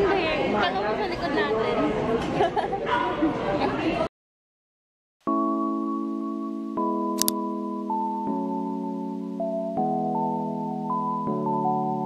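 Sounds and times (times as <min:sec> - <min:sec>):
people talking in reverberant room: 0:00.0 - 0:04.1.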